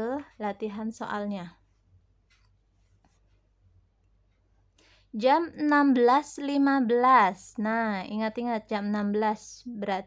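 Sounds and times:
faint soft rustle: 0:01.6 - 0:04.7.

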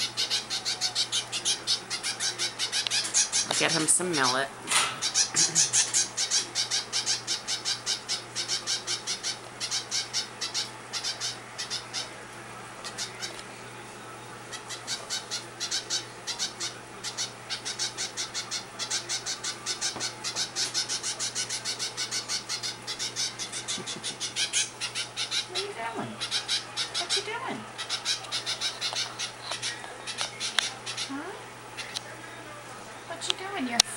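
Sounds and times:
finch fledgling begging calls: 0:00.0 - 0:04.4, 0:05.0 - 0:12.1, 0:14.5 - 0:31.1.

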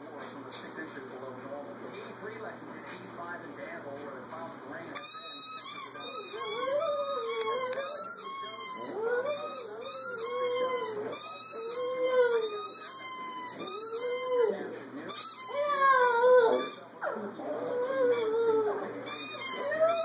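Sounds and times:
small dog howling: 0:06.3 - 0:08.0, 0:08.8 - 0:12.7, 0:15.5 - 0:18.9, 0:19.5 - 0:20.0.

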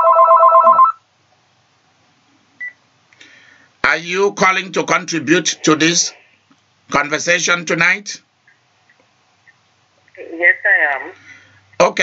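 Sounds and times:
telephone ringing: 0:00.0 - 0:01.0.

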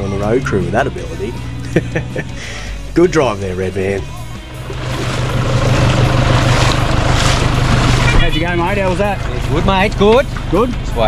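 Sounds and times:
background music: 0:00.0 - 0:11.0
diesel engine running: 0:00.0 - 0:11.0.

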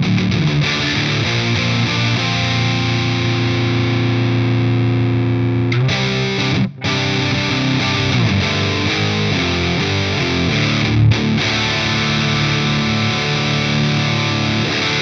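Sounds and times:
distorted electric guitar: 0:00.0 - 0:15.0.

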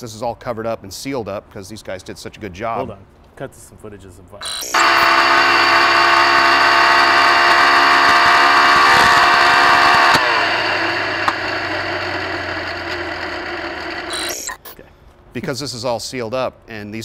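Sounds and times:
race car engine at high revs: 0:04.6 - 0:14.5.

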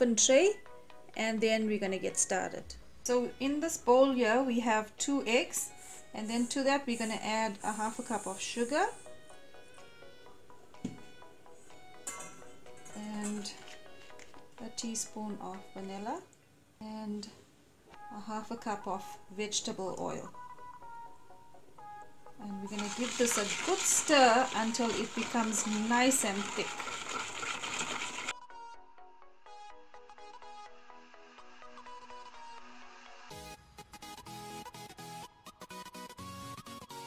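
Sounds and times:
soft background music: 0:00.0 - 0:37.0
whisk beating in a bowl: 0:22.7 - 0:28.3.

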